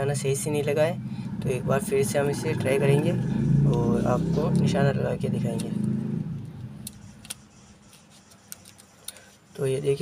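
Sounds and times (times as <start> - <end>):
low rumble: 0.4 - 6.6.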